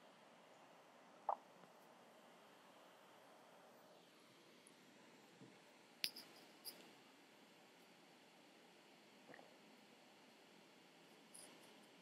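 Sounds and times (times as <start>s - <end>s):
small clicks: 6.0s - 6.9s.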